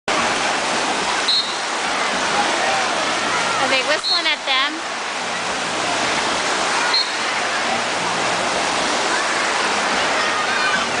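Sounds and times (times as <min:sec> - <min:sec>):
surf breaking and churning: 0:00.1 - 0:11.0
short whistle blast: 0:01.3 - 0:01.6, 0:06.9 - 0:07.2.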